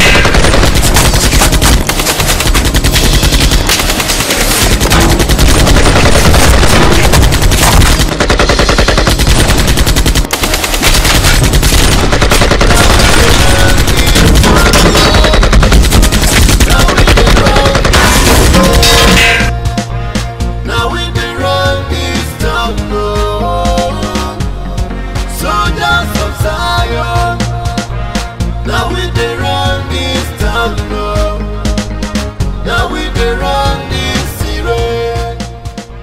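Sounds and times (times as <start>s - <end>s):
automatic rifle fire: 0.0s - 19.5s.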